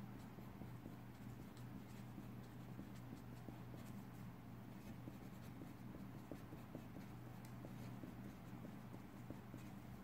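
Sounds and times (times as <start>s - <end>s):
pen scratching on paper: 0.0s - 10.0s
steady low hum: 0.0s - 10.0s.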